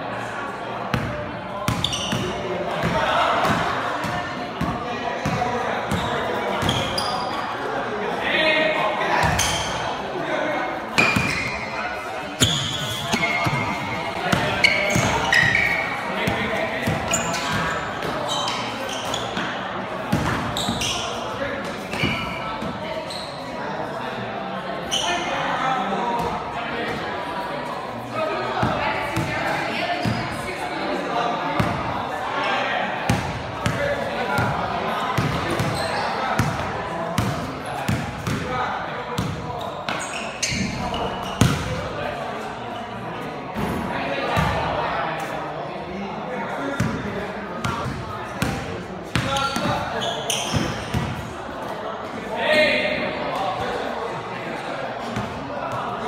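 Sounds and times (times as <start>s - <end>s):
players' voices: 0.0s - 56.0s
sneakers squeaking on floor: 0.9s - 7.7s, 9.2s - 10.0s, 11.0s - 23.6s, 24.8s - 25.3s, 29.9s - 30.5s, 35.1s - 38.5s, 39.2s - 43.0s, 47.6s - 51.3s
basketball bouncing on court: 12.4s - 17.4s, 37.2s - 38.5s, 41.2s - 41.8s, 44.4s - 44.6s, 47.7s - 51.2s
basketball bouncing on gym floor: 41.3s - 41.7s.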